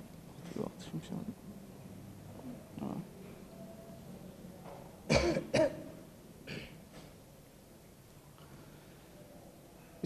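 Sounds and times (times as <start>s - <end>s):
man clearing his throat: 5.1s - 5.9s.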